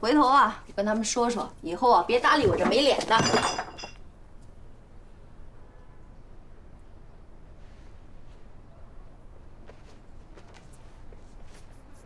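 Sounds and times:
woman speaking: 0.0 - 3.5.

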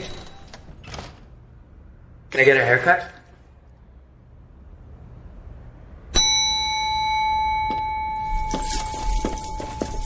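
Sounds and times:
bell ringing: 6.2 - 10.0.

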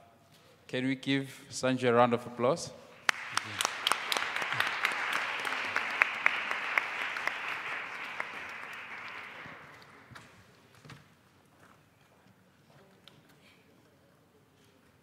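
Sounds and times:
audience applauding: 3.0 - 10.4.

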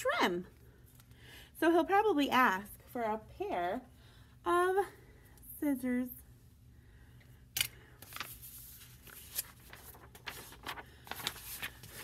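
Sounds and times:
paper rustling and clicks: 7.6 - 12.0.

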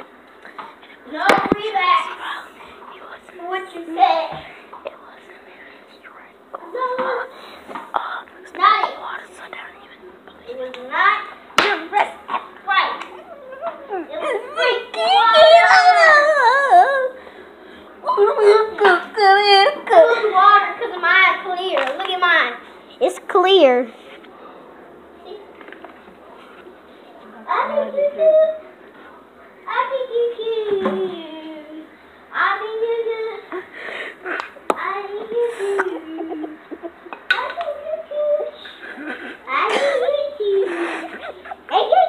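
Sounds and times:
child wordless wailing: 13.0 - 17.2.

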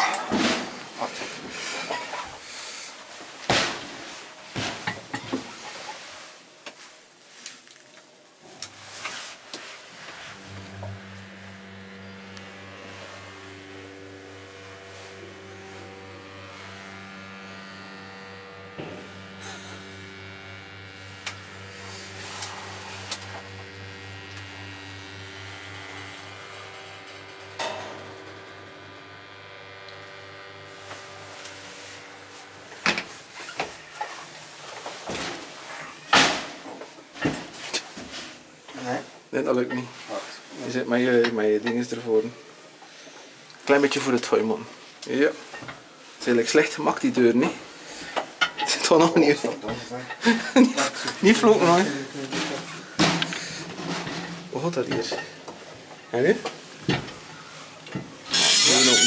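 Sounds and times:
elevator drive humming: 9.8 - 34.7.

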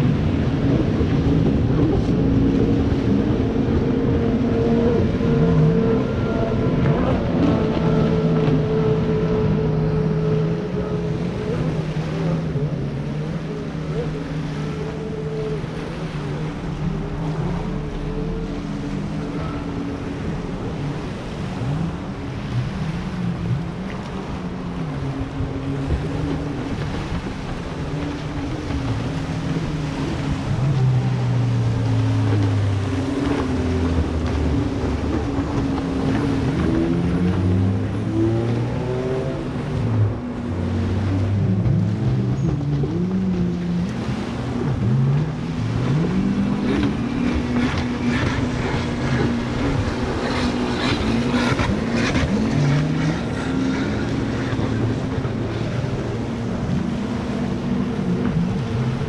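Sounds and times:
jet ski engines revving: 0.0 - 59.0.

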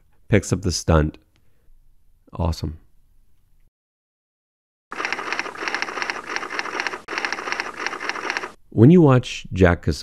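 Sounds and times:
keyboard typing clicks: 5.0 - 8.6.

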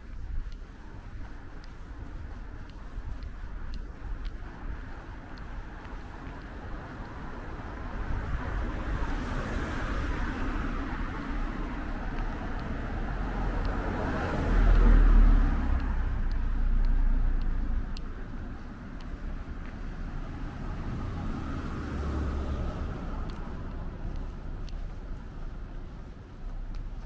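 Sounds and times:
car passing: 0.0 - 27.0
light ticks: 0.0 - 27.0
wind rumble on microphone: 0.0 - 27.0.

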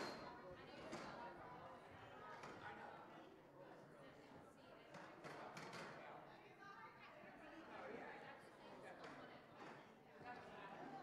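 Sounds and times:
distant people talking: 0.0 - 0.7.

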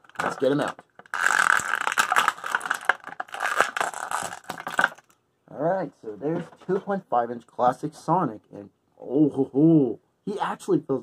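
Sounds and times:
plastic packaging crinkling: 0.0 - 5.2.

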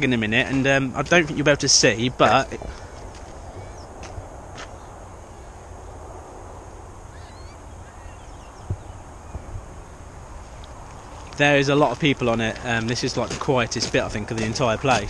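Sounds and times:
faint bird calls: 2.4 - 4.0, 7.0 - 11.3.

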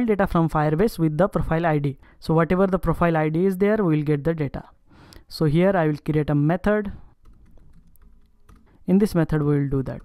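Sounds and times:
keyboard typing clicks: 7.2 - 10.0.

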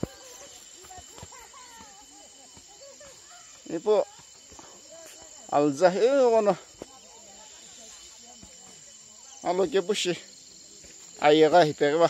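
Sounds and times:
high-pitched insect drone: 0.0 - 12.0.

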